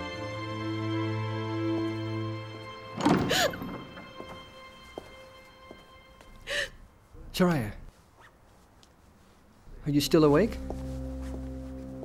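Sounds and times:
woman gasping while crying: 0:03.2 - 0:03.8, 0:06.4 - 0:06.9.

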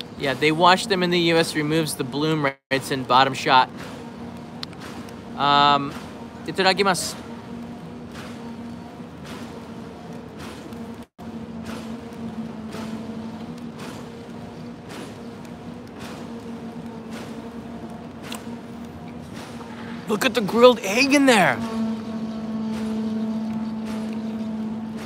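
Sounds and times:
steady hum: 0:00.0 - 0:25.0.

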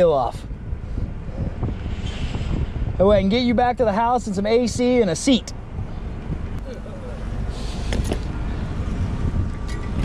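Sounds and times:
wind noise on microphone: 0:00.0 - 0:10.0
car engine rumble inside cabin: 0:00.1 - 0:03.5, 0:04.1 - 0:10.0.

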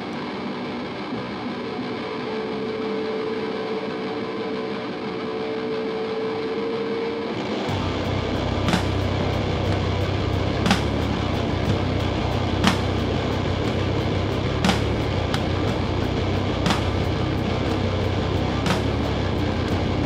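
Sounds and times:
distorted electric guitars: 0:00.0 - 0:20.0
bass and drums: 0:07.7 - 0:20.0
sharp cymbal hits: 0:07.7 - 0:20.0.

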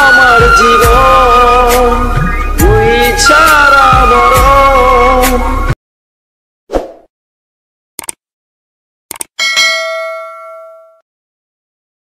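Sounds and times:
notification bell ding: 0:09.4 - 0:11.0.

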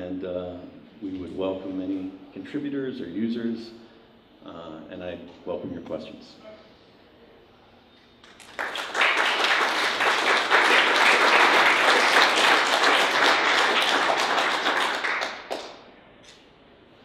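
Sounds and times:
audience applauding: 0:08.2 - 0:15.8.

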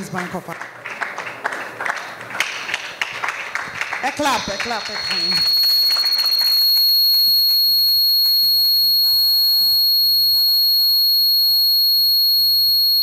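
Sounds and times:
high-pitched whistling tone: 0:03.8 - 0:13.0.

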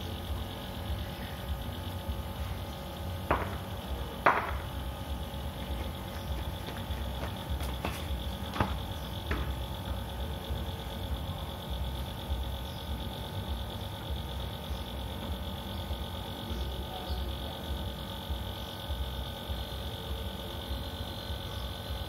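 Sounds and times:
steady high-pitched hum: 0:00.0 - 0:22.0.

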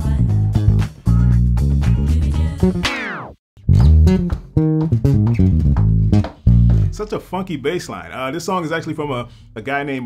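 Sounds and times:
funky electric bass line: 0:00.0 - 0:07.1.

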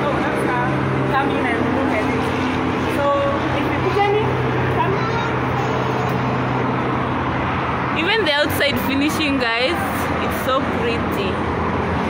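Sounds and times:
faint voices: 0:00.0 - 0:06.7
road traffic rumble: 0:00.0 - 0:12.0.

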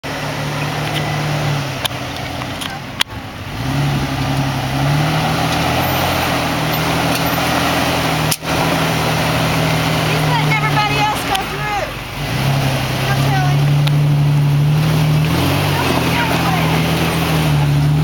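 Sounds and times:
car engine at low speed: 0:00.0 - 0:18.0.

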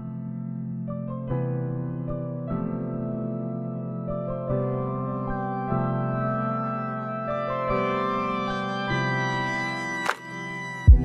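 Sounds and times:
slow keyboard chords: 0:00.0 - 0:11.0.

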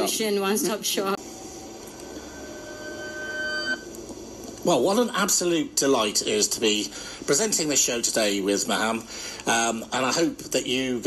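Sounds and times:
steady whining tone: 0:01.2 - 0:04.6.

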